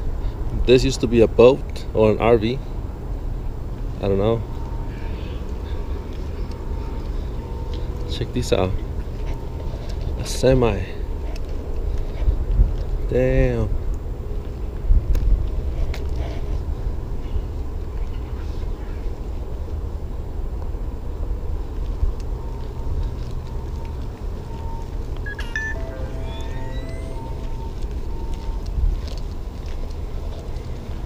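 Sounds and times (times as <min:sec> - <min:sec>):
short rising chirps: 0:25.3 - 0:27.6
faint beeps: 0:25.3 - 0:27.8.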